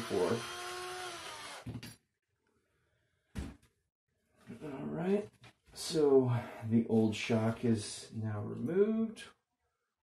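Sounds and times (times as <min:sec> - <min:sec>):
man speaking: 0:04.5 - 0:09.3.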